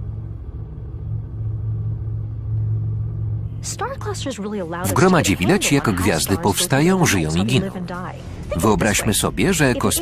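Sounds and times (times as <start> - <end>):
spaceship engine drone: 0.0 - 10.0.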